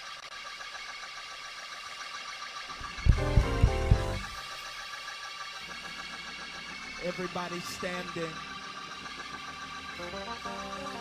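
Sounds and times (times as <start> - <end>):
low organ chord stabs: 3.1 - 4.4, 10.0 - 11.0
organ playing gospel chords: 3.1 - 4.4, 10.0 - 11.0.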